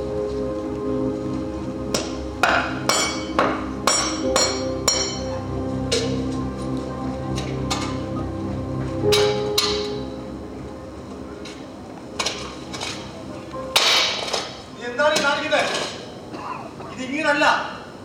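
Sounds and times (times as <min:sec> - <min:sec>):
sustained backing music: 0:00.0 - 0:17.0.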